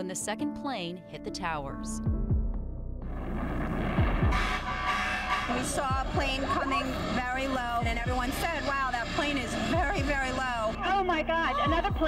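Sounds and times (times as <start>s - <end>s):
dramatic background music: 1.2s - 12.0s
low heartbeat-like beats: 2.0s - 4.7s, 5.5s - 10.5s, 11.2s - 12.0s
steady horn-like tone: 4.2s - 10.8s.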